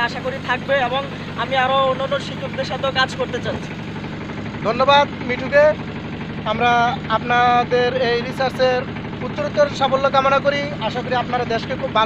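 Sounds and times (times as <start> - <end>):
people talking: 0.0 - 3.7, 4.6 - 5.8, 6.5 - 12.0
boat engine humming: 0.0 - 12.0.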